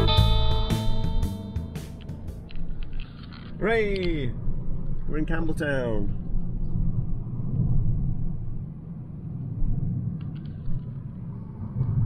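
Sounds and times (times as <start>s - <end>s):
tyre and engine rumble in car: 1.6s - 12.0s.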